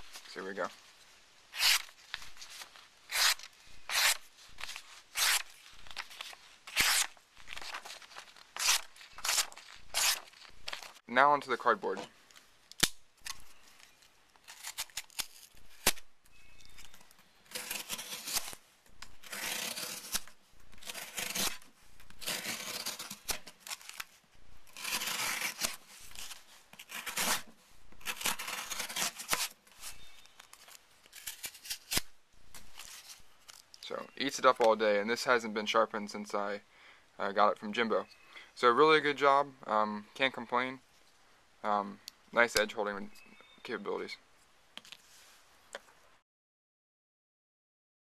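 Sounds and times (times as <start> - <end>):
knife slicing cardboard: 1.5 - 10.9, 17.5 - 24.1, 24.7 - 30.2.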